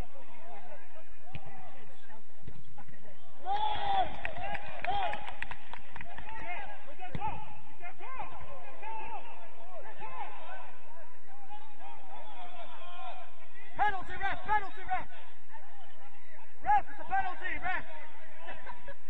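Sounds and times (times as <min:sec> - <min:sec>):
footballers shouting: 0:02.9 - 0:19.0.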